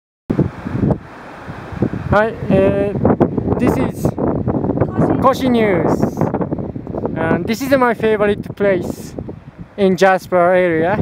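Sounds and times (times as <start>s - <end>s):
wind buffeting microphone: 0.3s - 11.0s.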